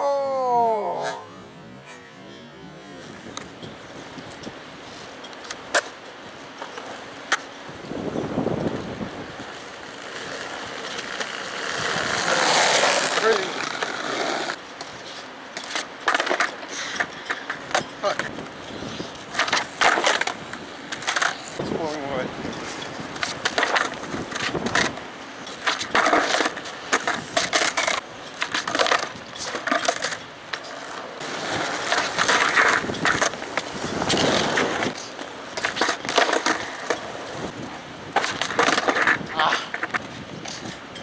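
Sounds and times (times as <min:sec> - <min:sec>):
skateboard wheels rolling: 0:00.0 - 0:41.0
skateboard wooden clacks: 0:09.9 - 0:18.6, 0:19.3 - 0:21.6, 0:22.5 - 0:37.2, 0:38.1 - 0:40.8.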